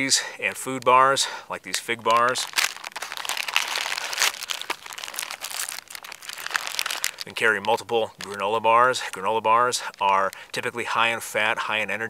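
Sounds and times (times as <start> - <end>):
plastic bag crinkling: 1.7 - 8.6.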